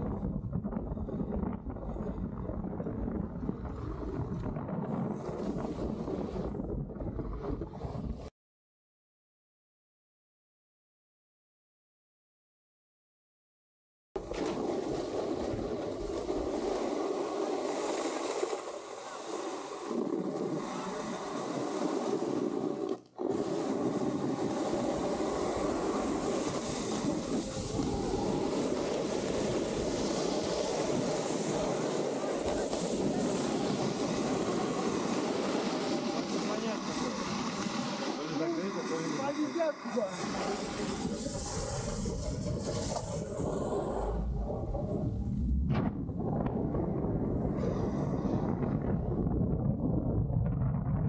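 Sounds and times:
snowboard carving over snow: 0:00.0 - 0:08.3, 0:14.2 - 0:51.0
wind rushing over microphone: 0:00.0 - 0:08.3, 0:14.2 - 0:51.0.

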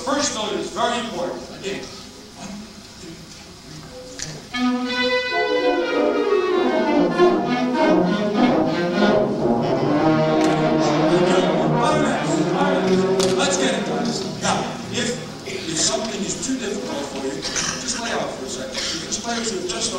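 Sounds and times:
concert band playing: 0:04.4 - 0:18.4.

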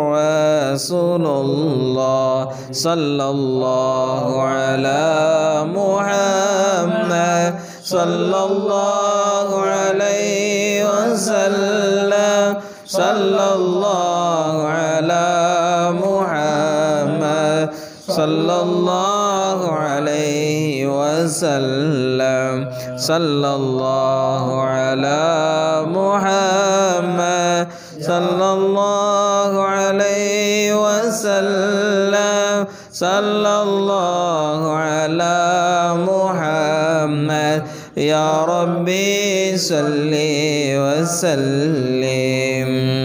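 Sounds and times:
melodic religious chanting: 0:00.0 - 0:43.0.

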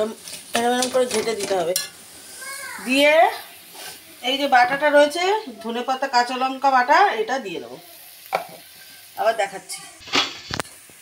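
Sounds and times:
beans sizzling in pan: 0:00.0 - 0:11.0.

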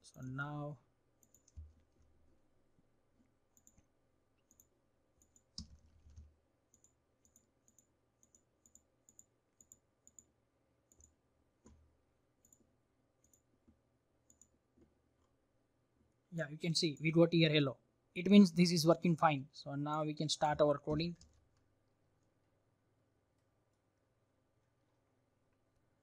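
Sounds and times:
computer mouse clicks: 0:01.2 - 0:02.1, 0:03.5 - 0:11.8, 0:12.4 - 0:15.4.

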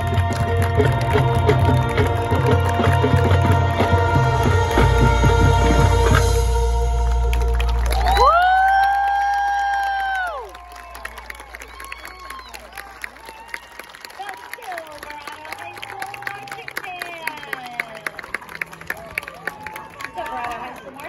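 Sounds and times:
crowd clapping: 0:00.0 - 0:04.9, 0:06.9 - 0:21.0
marching band chord: 0:00.0 - 0:08.0
crowd cheering and whooping: 0:07.4 - 0:14.8, 0:15.6 - 0:21.0
spectator shouting woo: 0:07.9 - 0:13.8.

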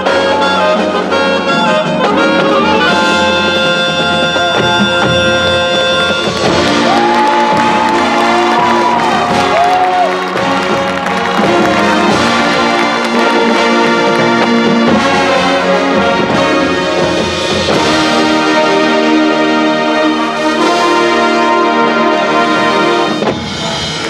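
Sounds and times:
brass winds: 0:00.0 - 0:24.0
marching band playing: 0:00.0 - 0:24.0
percussion section: 0:00.0 - 0:24.0.

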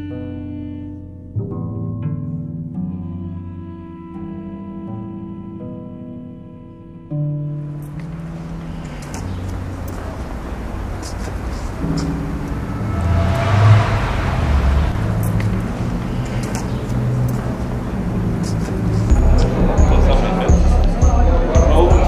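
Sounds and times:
street background noise: 0:07.6 - 0:22.0
car passing: 0:08.0 - 0:21.0.

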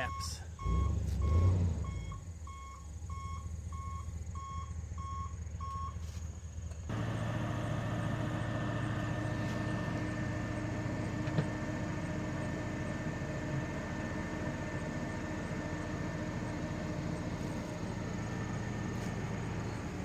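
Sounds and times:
truck backup alarm beeping: 0:00.0 - 0:06.0, 0:06.9 - 0:20.0
hydraulic hoist humming: 0:06.9 - 0:20.0.

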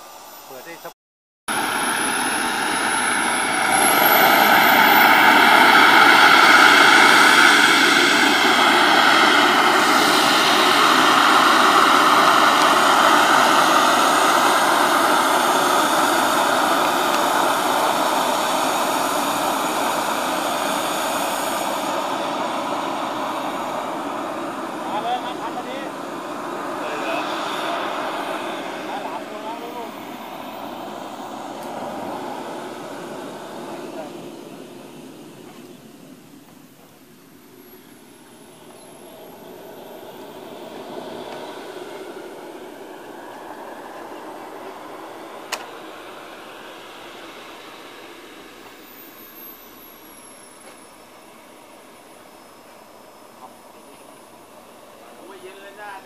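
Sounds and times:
model jet engine rushing: 0:00.0 - 0:56.0
high whine sliding in pitch: 0:01.5 - 0:56.0.

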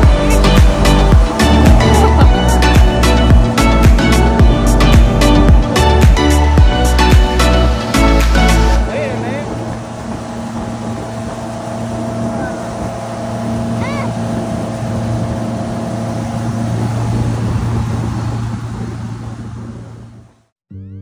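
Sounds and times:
rushing boat wake: 0:00.0 - 0:20.5
boat engine humming: 0:00.0 - 0:20.6.

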